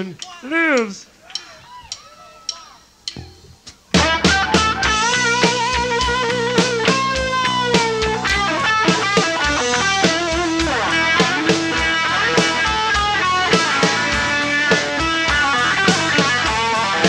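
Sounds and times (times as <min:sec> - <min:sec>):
drums with steady beat: 0:00.0 - 0:17.0
electric guitars: 0:03.3 - 0:17.0.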